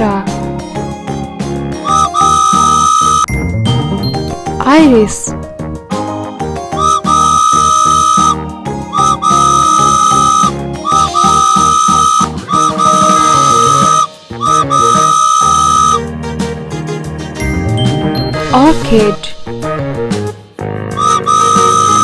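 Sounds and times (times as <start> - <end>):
cartoon steam train whistle: 1.8 - 3.3, 6.8 - 16.0, 21.0 - 22.0
children's music: 1.8 - 5.3, 6.8 - 16.0, 21.0 - 22.0.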